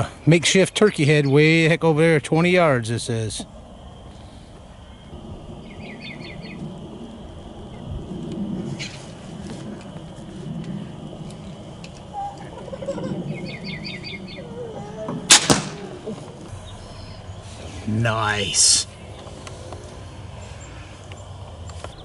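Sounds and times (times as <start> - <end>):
low steady rumble: 2.0 - 21.7
small bird trilling: 12.2 - 15.0.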